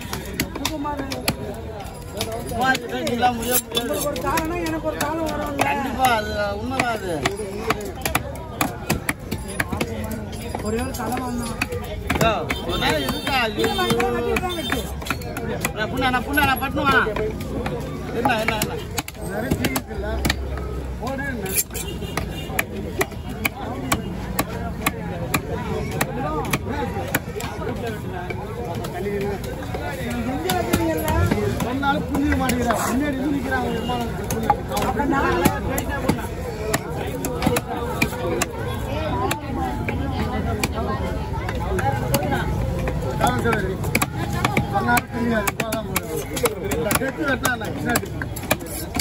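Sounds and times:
people talking: 0.0 - 49.0
cleaver chopping on wood block: 2.2 - 27.8, 34.2 - 49.0.

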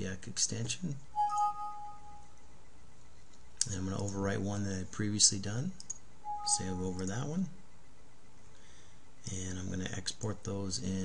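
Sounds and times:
computer chime ding: 1.2 - 2.3, 6.3 - 7.0.

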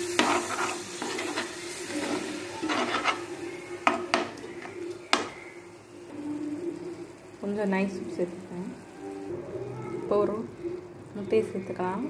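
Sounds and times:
spatula scraping a frying pan: 0.0 - 4.1
food sizzling in a pan: 0.0 - 12.0
spatula knocking against pan: 5.1 - 5.4.

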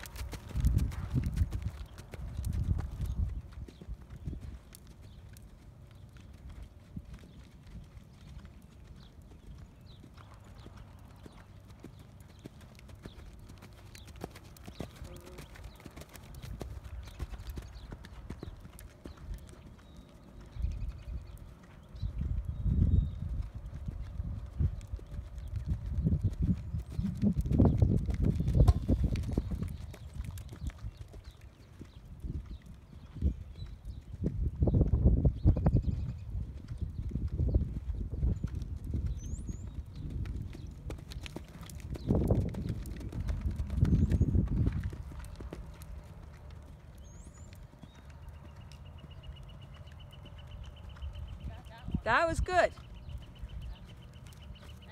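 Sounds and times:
horse hoofbeats on dirt: 0.0 - 54.9.

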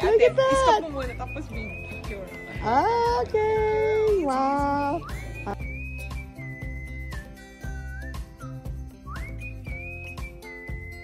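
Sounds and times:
steady music beat: 0.0 - 11.0
whistled tune: 0.0 - 11.0.

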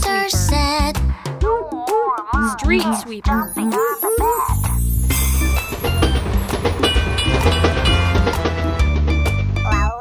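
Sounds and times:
toy train wheels clacking on rails: 5.1 - 8.6.

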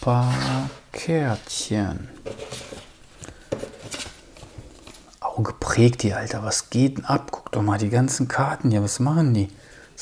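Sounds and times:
cardboard cards tapping and rustling: 2.2 - 5.1.

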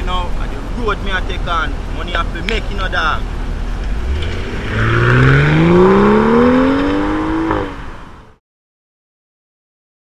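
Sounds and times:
car engine accelerating: 3.2 - 8.4.

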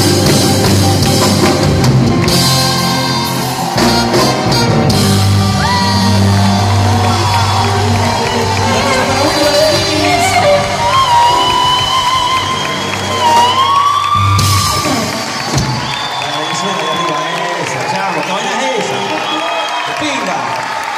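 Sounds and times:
live reggae rock band playing: 0.0 - 16.0
audience shouting: 1.8 - 20.9
gliding vocals: 6.6 - 12.6.

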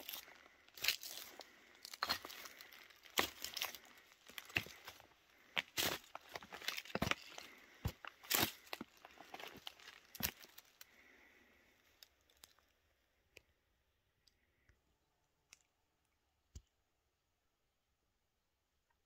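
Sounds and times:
footsteps crunching through dry leaves: 0.8 - 5.0.

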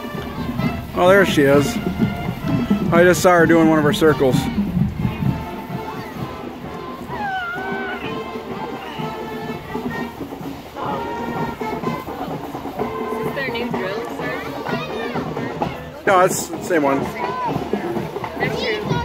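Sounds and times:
distant marching band playing: 0.0 - 19.0
spectators' voices: 0.0 - 19.0.

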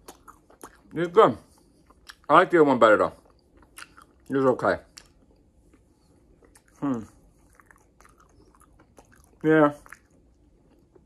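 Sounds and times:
chewing food: 0.0 - 2.3, 3.1 - 11.0.

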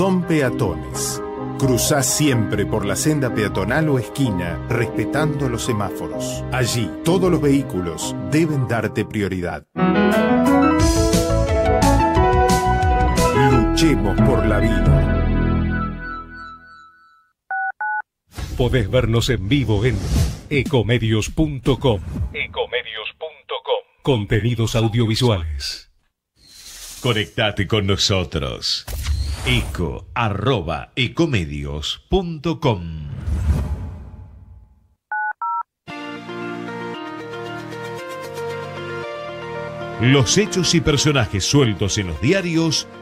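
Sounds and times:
music: 0.0 - 16.7, 35.9 - 43.0
telephone keypad beeps: 17.5 - 18.0, 35.1 - 35.6.

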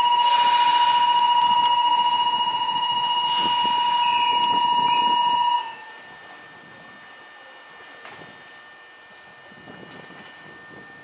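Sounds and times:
high-pitched departure buzzer: 0.0 - 6.1.

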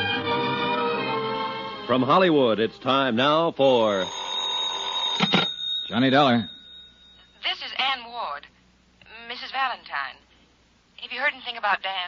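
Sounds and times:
telephone bell ringing: 3.8 - 7.6.

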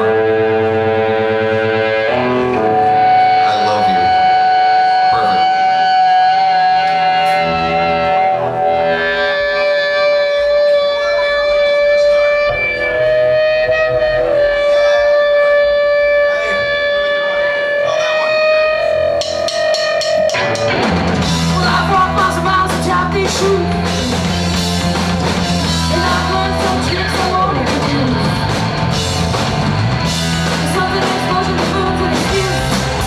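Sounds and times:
electric guitar holding long notes: 0.0 - 33.0
drum hits: 19.1 - 33.0.

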